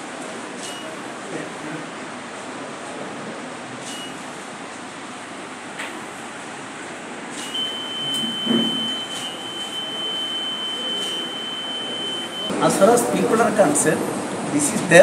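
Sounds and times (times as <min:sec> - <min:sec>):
voting machine beeping: 0:07.4 - 0:12.5.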